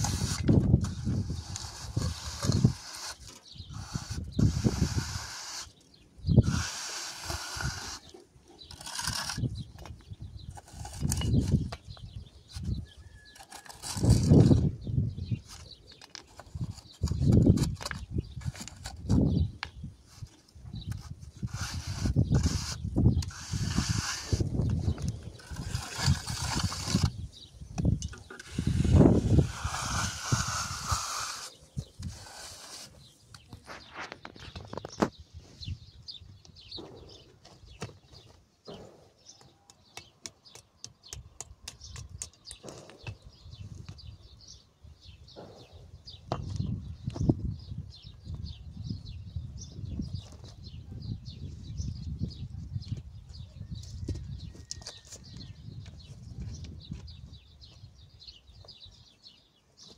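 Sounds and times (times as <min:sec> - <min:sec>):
trowel scraping mortar: 0:00.0 - 0:35.1.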